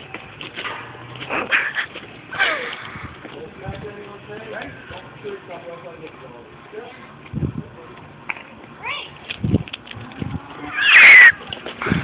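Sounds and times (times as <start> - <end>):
person shrieking: 10.7 - 11.4.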